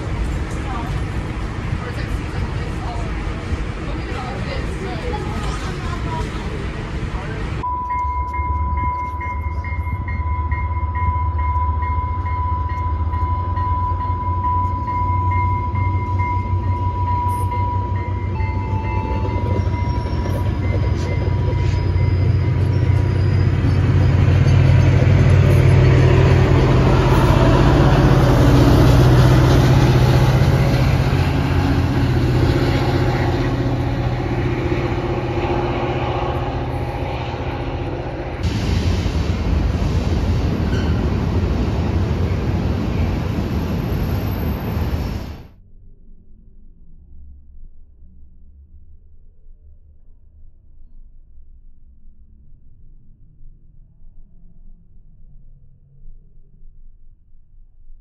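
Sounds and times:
train rolling past: 0.0s - 45.6s
high-pitched tone: 7.6s - 29.3s.

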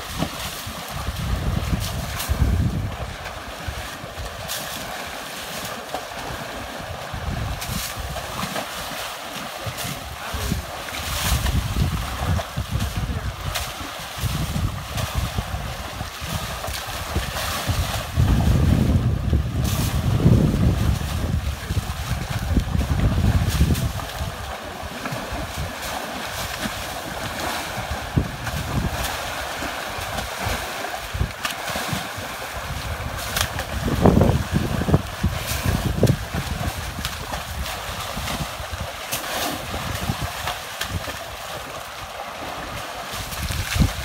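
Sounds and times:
wind buffeting microphone: 0.0s - 4.5s, 6.7s - 8.5s, 9.6s - 41.6s, 42.6s - 44.0s
water sloshing and splashing: 0.0s - 44.0s.

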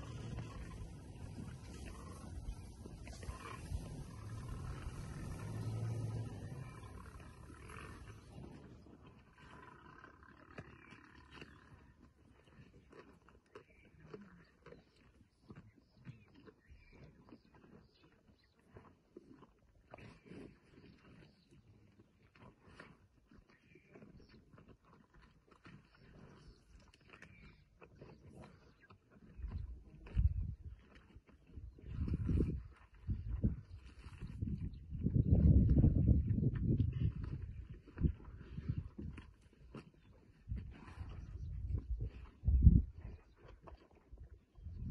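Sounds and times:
lionesses growling: 0.0s - 12.0s
lionesses growling low: 0.0s - 18.8s, 19.9s - 44.9s
chewing and tearing snaps: 9.1s - 34.0s, 36.5s - 42.4s, 43.1s - 44.4s.

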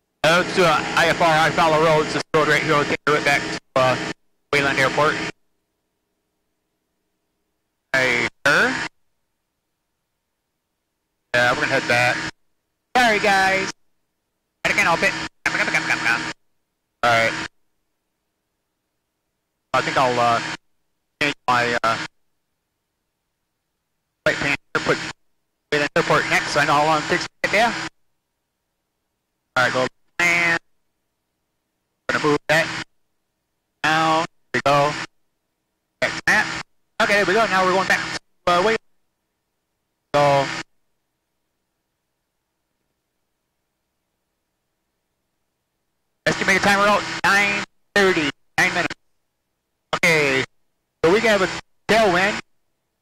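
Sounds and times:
person talking: 0.2s - 5.3s, 8.0s - 8.8s, 11.4s - 12.3s, 13.0s - 13.8s, 14.6s - 16.3s, 19.8s - 20.5s, 25.7s - 27.8s, 36.0s - 38.8s, 40.1s - 40.6s, 46.3s - 49.0s, 49.9s - 52.4s.

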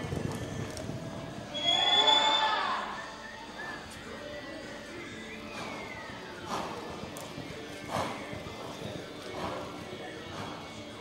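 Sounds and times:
background music: 0.0s - 11.0s
long falling whistle: 1.5s - 3.3s
voices: 1.6s - 11.0s.

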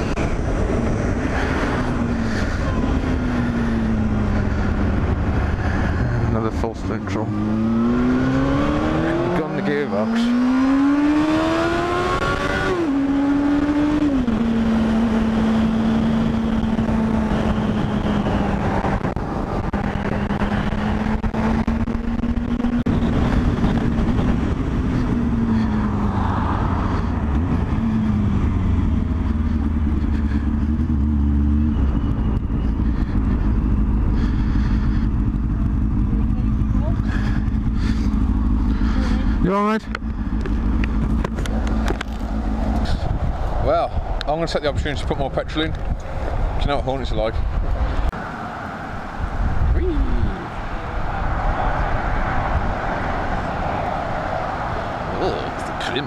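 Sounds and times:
wind rush: 0.0s - 6.4s, 10.8s - 29.4s, 40.8s - 56.0s
motorcycle engine: 0.0s - 56.0s.

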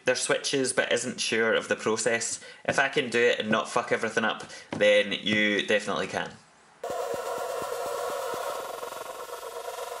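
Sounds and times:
electronic buzzing tone: 6.8s - 10.0s.

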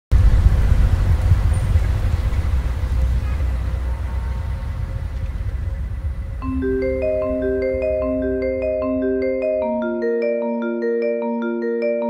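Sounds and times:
low city rumble: 0.1s - 9.6s.

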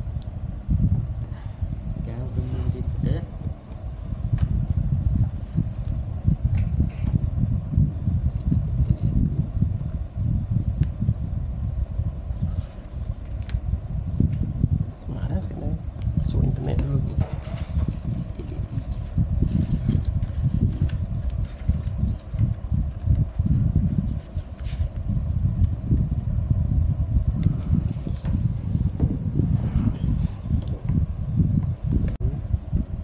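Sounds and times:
faint steady hum: 0.0s - 33.0s
wind buffeting microphone: 0.0s - 33.0s.

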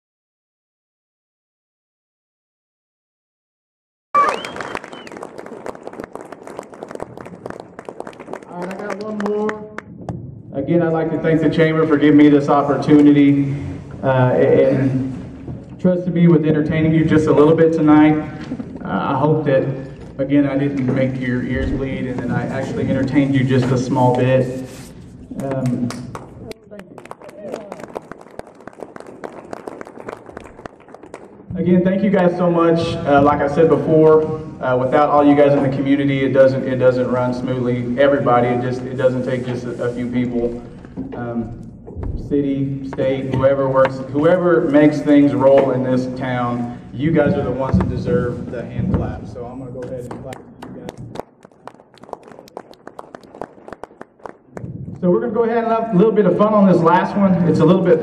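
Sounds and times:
audience applause: 4.2s - 9.6s, 25.4s - 31.5s, 50.0s - 54.8s.

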